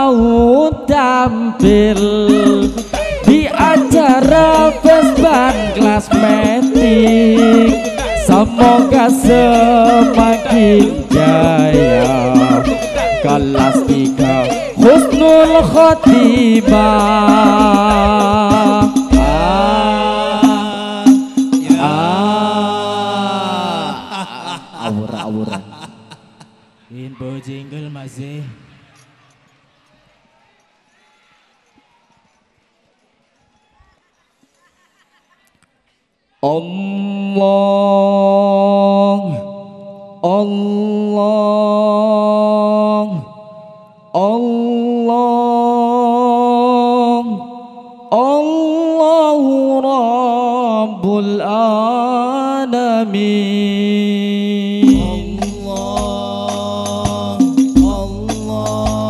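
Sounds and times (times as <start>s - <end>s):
men chanting long note: 2.0s - 25.8s.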